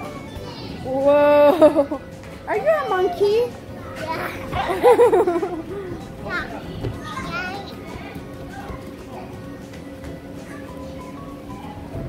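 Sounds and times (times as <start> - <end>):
children's voices: 0.0 - 2.2, 3.0 - 9.7, 10.3 - 11.8
background music: 0.0 - 12.0.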